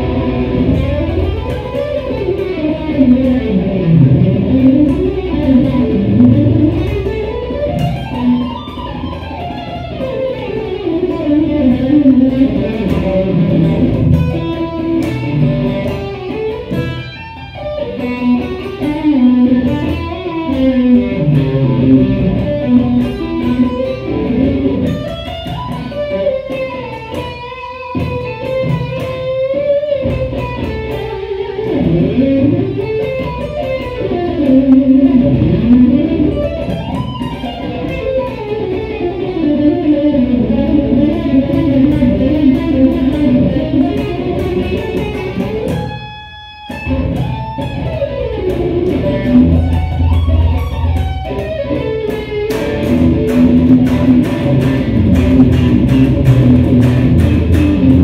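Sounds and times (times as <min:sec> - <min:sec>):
electric guitar solo: 0:00.0 - 0:58.0.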